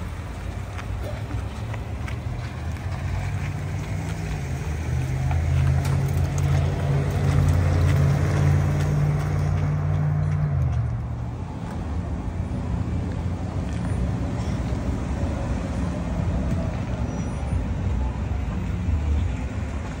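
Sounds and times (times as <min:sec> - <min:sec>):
pickup truck engine pulling away: 0:01.6 - 0:10.8.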